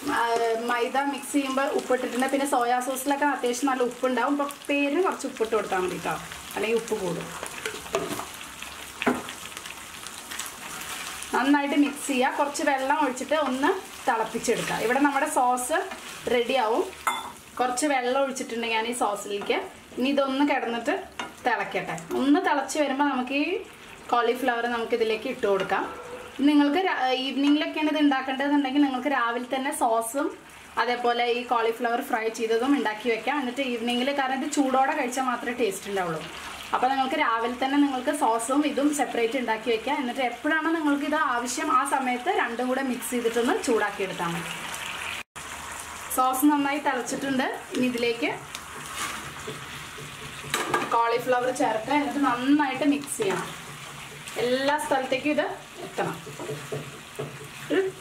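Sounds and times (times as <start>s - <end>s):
woman talking: 0.0s - 7.3s, 11.3s - 16.9s, 17.6s - 44.5s, 46.2s - 48.4s, 50.8s - 53.6s, 54.4s - 56.3s, 57.7s - 58.0s
light sizzle: 0.0s - 58.0s
spatula stirring in frying pan: 7.2s - 17.5s, 47.0s - 58.0s.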